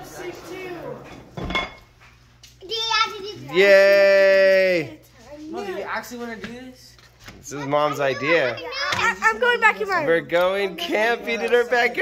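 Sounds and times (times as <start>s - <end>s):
child's voice: 2.6s - 3.6s, 7.5s - 10.1s.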